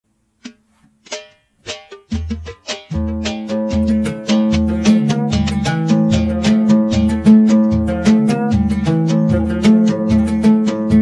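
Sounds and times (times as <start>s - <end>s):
oud plucked notes: 0.3s - 11.0s.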